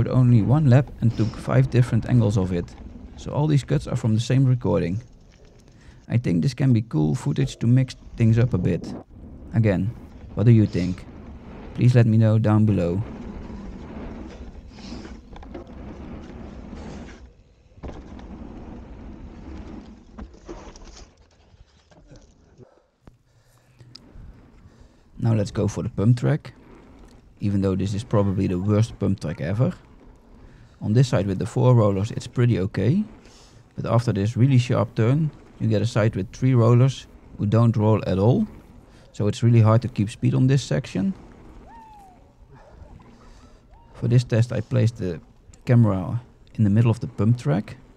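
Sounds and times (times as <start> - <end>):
wind rumble: 0.0 - 20.5, 23.3 - 47.9
bike rattles: 0.0 - 22.6, 23.4 - 47.9
bike tyre and trail noise: 0.0 - 47.9.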